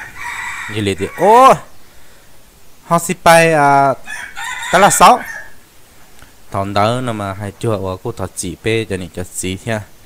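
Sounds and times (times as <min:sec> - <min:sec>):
man calling out: 0:00.7 - 0:01.8.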